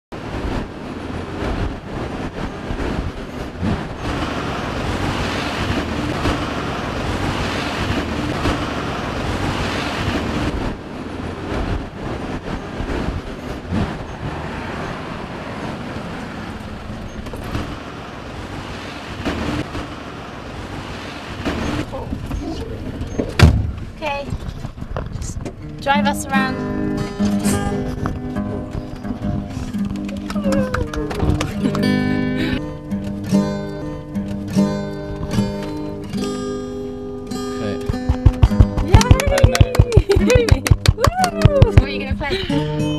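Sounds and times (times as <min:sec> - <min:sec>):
road traffic noise: 0:00.1 - 0:42.9
car engine running: 0:00.2 - 0:42.9
sharp knock: 0:37.8 - 0:38.9.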